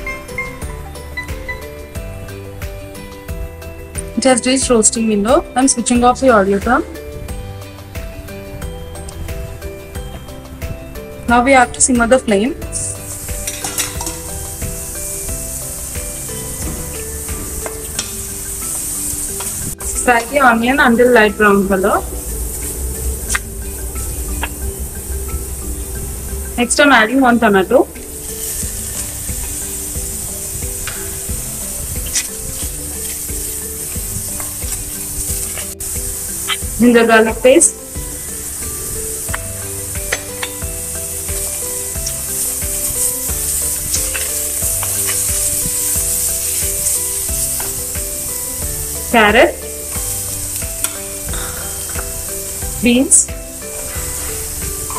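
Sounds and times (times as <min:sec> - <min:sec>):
onions sizzling in a pot: 0:00.0 - 0:54.9
soft background music: 0:00.0 - 0:54.9.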